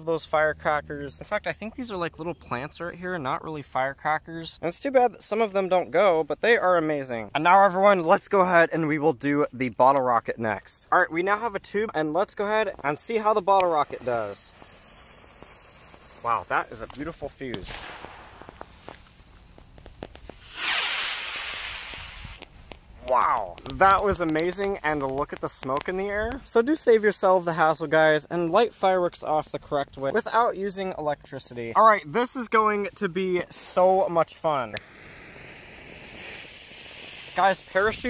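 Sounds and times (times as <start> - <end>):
fuse burning with crackles: 0.0 - 38.0
lit fuse fizzing: 12.4 - 26.6, 34.6 - 38.0
torch lighter hissing: 13.9 - 23.0, 34.7 - 38.0
rocket launch whoosh: 17.5 - 19.3, 20.0 - 22.4.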